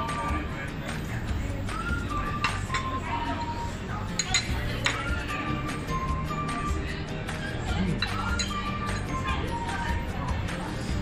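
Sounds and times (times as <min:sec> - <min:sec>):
utensils clinking on metal pot: 0:02.3 - 0:03.1, 0:04.1 - 0:05.2, 0:07.9 - 0:09.3.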